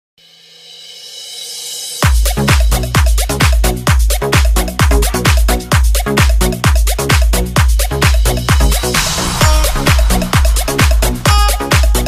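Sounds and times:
hissing build-up sweep: 8.5s - 12.0s
held high electronic tones: 9.2s - 12.0s.

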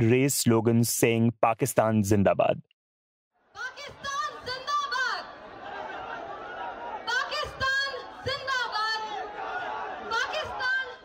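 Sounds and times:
woman shouting into microphone: 3.6s - 5.3s, 7.0s - 9.3s, 10.0s - 11.0s
crowd murmur: 3.8s - 11.0s.

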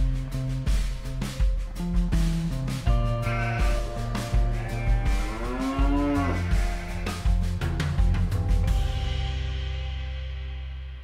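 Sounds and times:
background music with beat: 0.0s - 11.0s
farm animal call: 3.2s - 7.2s.

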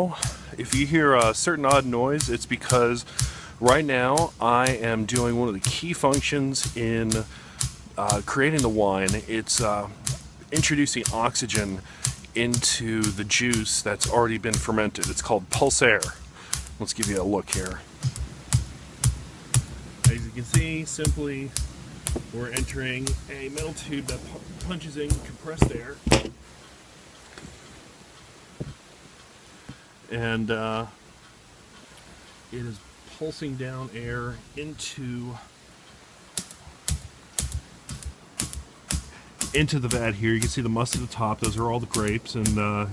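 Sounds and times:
compressed air pulses popping: 0.0s - 26.6s, 36.3s - 42.9s
sharp compressed air pulses: 36.5s - 39.6s.

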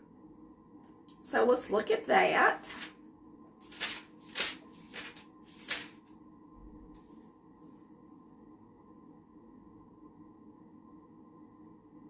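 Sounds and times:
book pages turning: 2.7s - 3.0s, 3.6s - 6.1s.

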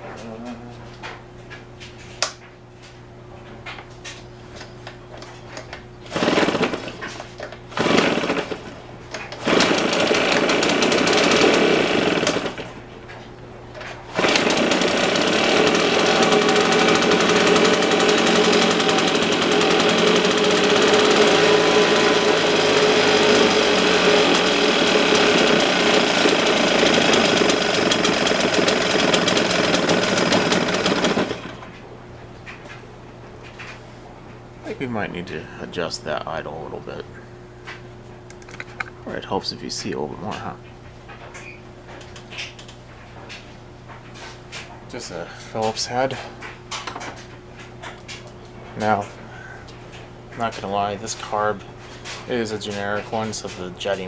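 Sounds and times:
leaf blower engine running: 6.1s - 7.1s, 7.7s - 8.8s, 9.4s - 12.8s, 14.1s - 31.7s.

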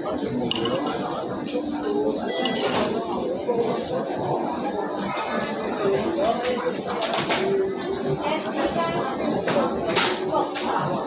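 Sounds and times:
room hubbub: 0.0s - 11.0s.

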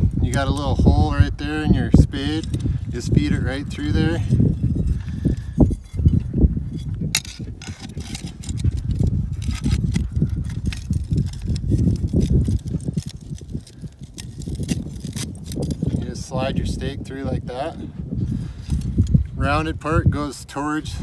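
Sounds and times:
steady low rumble: 0.0s - 21.0s.

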